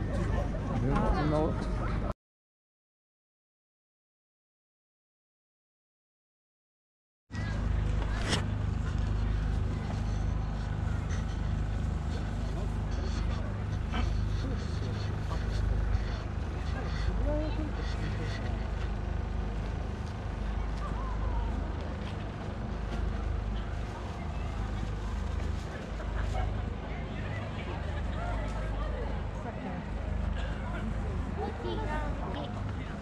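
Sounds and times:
people chatting: 0:00.0 - 0:02.1, 0:09.0 - 0:19.0, 0:19.6 - 0:22.3, 0:23.0 - 0:33.0
steady low rumble: 0:07.3 - 0:33.0.

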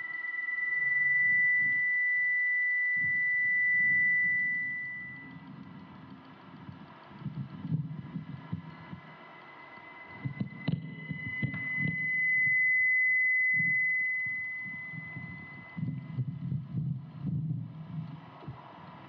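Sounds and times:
high electronic tone: 0:00.0 - 0:05.4
low irregular throbbing pulse: 0:14.9 - 0:18.7.

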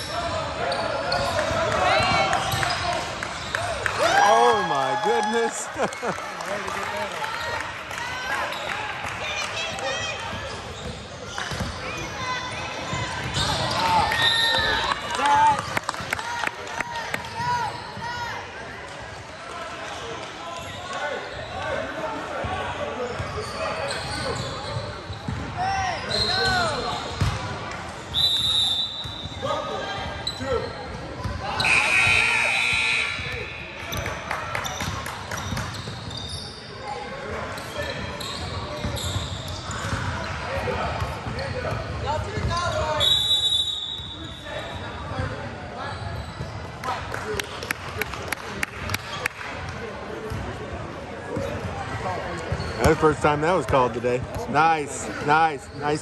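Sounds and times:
sneakers squeaking: 0:00.0 - 0:03.8, 0:09.7 - 0:15.8, 0:17.1 - 0:46.8, 0:50.2 - 0:56.0
spectators' voices echoing: 0:00.0 - 0:23.2, 0:39.7 - 0:56.0
balls bouncing on hardwood court: 0:10.2 - 0:11.9, 0:27.2 - 0:27.5.

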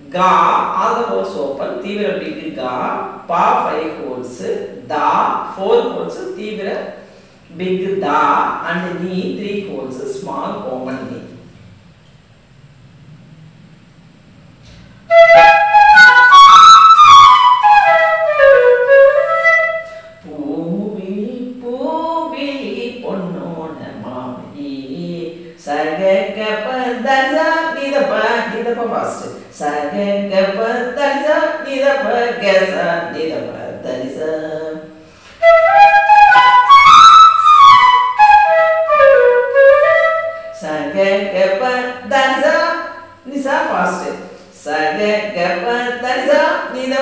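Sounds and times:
bamboo flute playing: 0:15.1 - 0:20.2, 0:35.4 - 0:40.6.

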